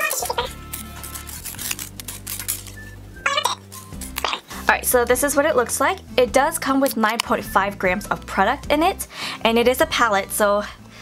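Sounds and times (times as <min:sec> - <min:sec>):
paper wrapping rustling: 0:00.0 - 0:03.0, 0:03.6 - 0:04.7
soft instrumental music: 0:00.0 - 0:11.0.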